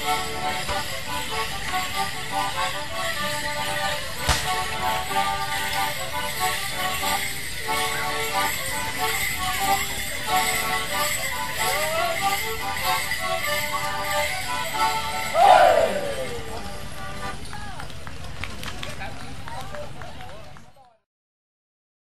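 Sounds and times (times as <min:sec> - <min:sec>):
folk dance tune on melodeon and concertina: 0:00.0 - 0:17.4
leg bells jingling: 0:00.0 - 0:17.5.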